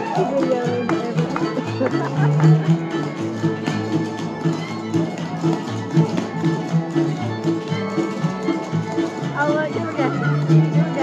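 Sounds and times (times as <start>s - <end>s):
fiddle melody: 0.0s - 11.0s
guitar strumming: 0.0s - 11.0s.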